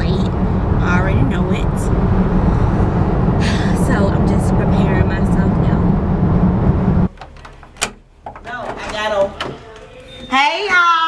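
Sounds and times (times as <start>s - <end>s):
car cabin road rumble: 0.0s - 7.1s
wooden door click: 7.1s - 9.6s.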